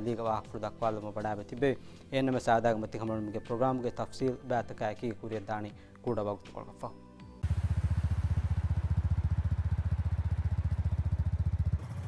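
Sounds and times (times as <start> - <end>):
motorcycle engine idling: 7.4 - 12.0.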